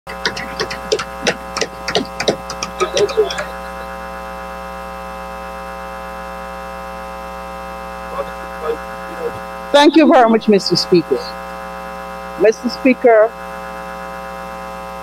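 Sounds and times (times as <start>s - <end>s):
electrical mains hum: 0.0s - 15.0s.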